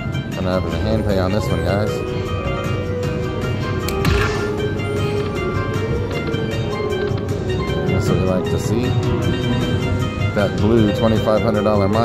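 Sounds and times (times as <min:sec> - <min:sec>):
slot machine bonus music: 0:00.3 - 0:12.0.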